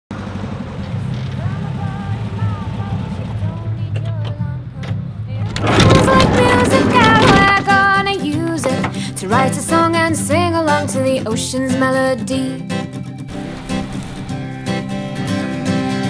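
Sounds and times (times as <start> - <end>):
van engine running: 0.1 - 11.8, 12.7 - 16.0
song with voice: 5.3 - 12.8.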